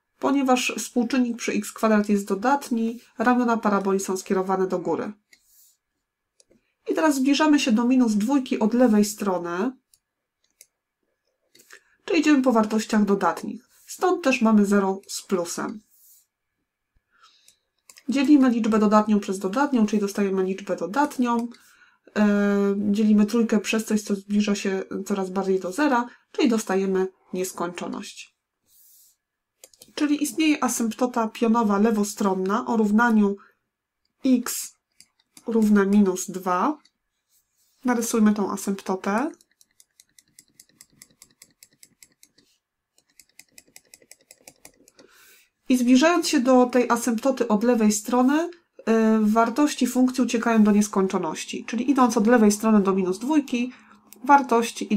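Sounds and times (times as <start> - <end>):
faint computer mouse clicks: 17.4 - 18.1, 21.4 - 21.6, 29.6 - 30.0, 34.9 - 35.7, 39.2 - 45.1.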